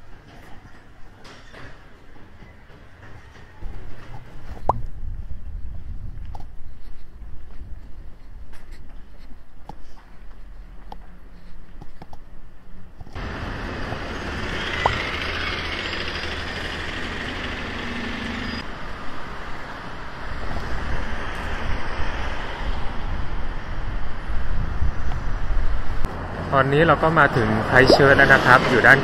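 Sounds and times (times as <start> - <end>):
buses and cars passing: 0.0 - 6.0, 6.6 - 29.0.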